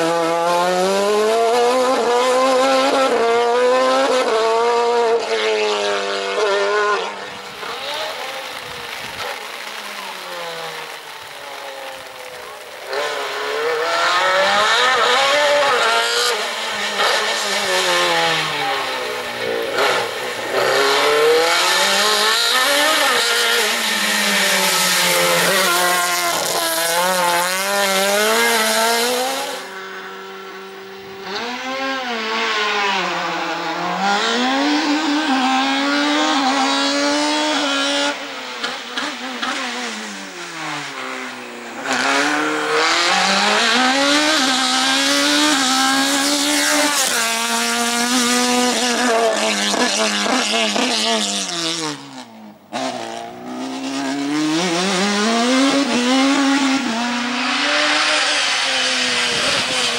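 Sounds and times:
race car engine revving: 0.0 - 59.9.

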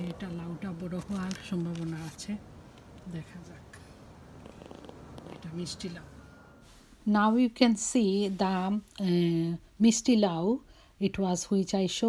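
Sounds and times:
faint low rumble: 0.0 - 9.8
background hiss: 0.0 - 11.2.

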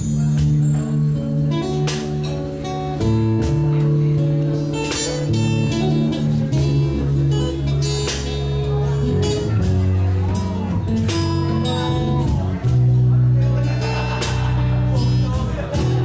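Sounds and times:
bass guitar notes: 0.0 - 16.0
strummed acoustic guitar: 0.0 - 16.0
cajon hits: 1.7 - 13.0.

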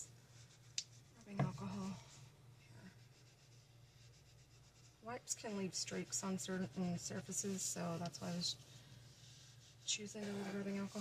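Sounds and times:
cloth rubbing on paper: 0.0 - 11.0.

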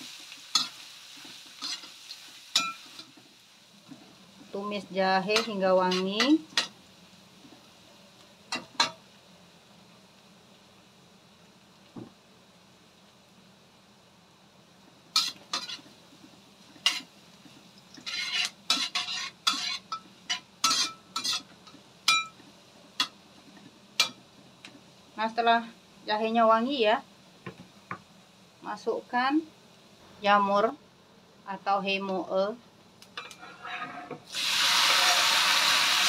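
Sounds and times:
oil sizzling: 0.0 - 36.0
metal spatula scraping a wok: 0.5 - 3.2, 5.2 - 6.8, 15.2 - 15.9, 16.8 - 17.1, 17.9 - 22.3, 33.2 - 35.8.

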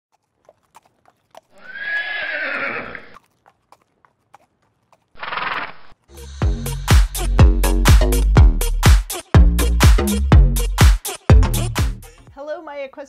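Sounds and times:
hoof clicks: 0.1 - 6.0
horse whinnying: 1.5 - 3.2, 5.2 - 6.0
pulsing horse call: 1.5 - 3.2, 5.2 - 6.0.

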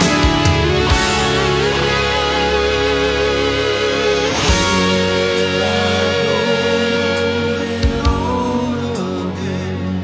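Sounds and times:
rock band with electric guitar: 0.0 - 10.0.

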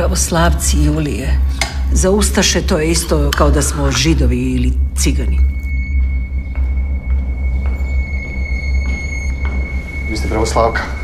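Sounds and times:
low rumble drone: 0.0 - 11.0.

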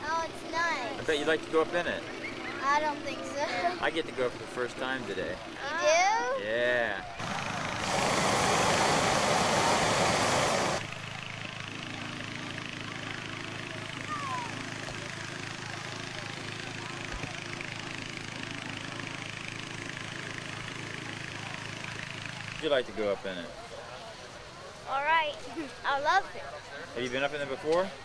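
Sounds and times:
propane burner roaring: 6.6 - 16.8
low engine drone: 7.1 - 16.9.

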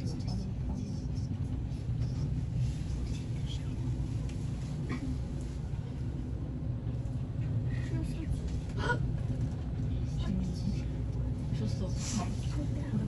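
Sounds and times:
elevator rumble and hum: 0.0 - 13.0.

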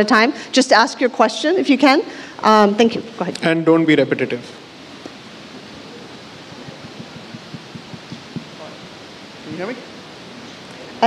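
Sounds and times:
sound system hiss: 4.0 - 11.0
soft low taps: 6.6 - 8.8.

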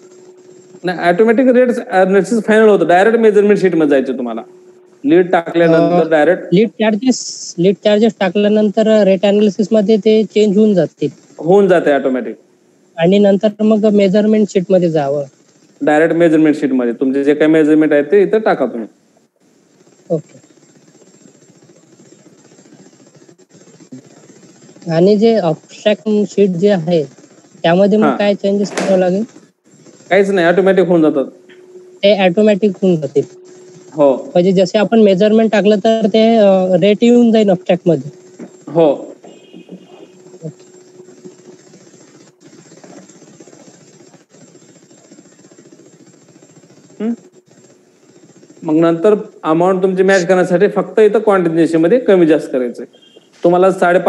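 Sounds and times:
faint high-pitched whine: 0.0 - 54.0
motor hum with rapid flutter: 0.0 - 54.0.

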